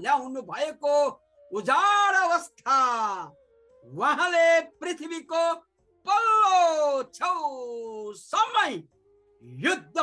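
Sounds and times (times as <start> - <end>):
faint flute music: 0.0 - 10.0.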